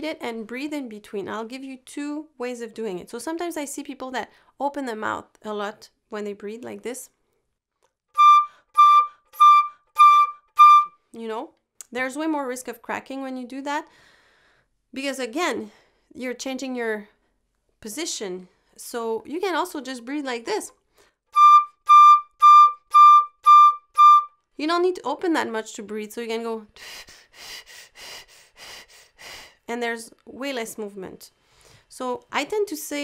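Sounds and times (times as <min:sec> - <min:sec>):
flute playing short high notes: 0:08.2 - 0:11.0, 0:21.4 - 0:24.4.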